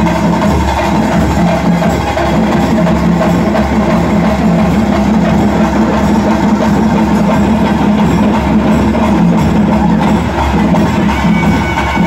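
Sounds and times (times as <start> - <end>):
quick dense drumbeats: 0.0 - 12.0.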